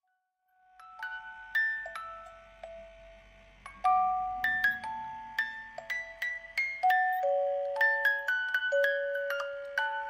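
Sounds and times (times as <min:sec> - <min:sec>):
music box playing slow tune: 0:00.0 - 0:10.0.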